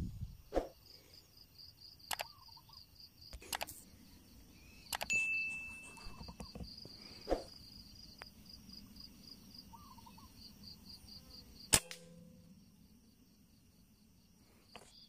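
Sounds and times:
insects chirping: 0.0s - 15.0s
bright bell-like ding: 5.1s - 6.1s
sharp crack with ring: 11.7s - 12.4s.

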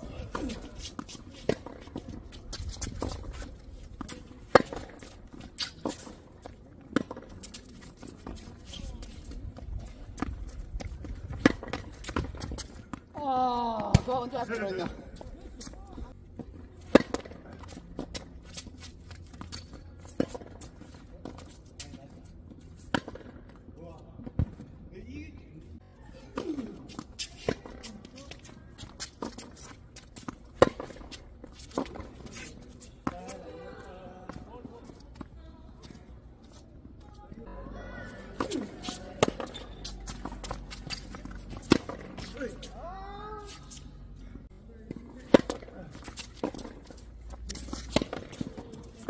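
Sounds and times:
shoes scuffing on court: 0.0s - 13.1s, 26.4s - 49.0s
distant racket hitting ball: 38.3s - 42.4s.

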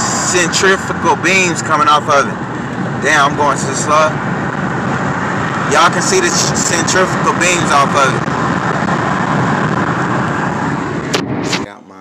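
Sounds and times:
car road and wind noise: 0.0s - 12.0s.

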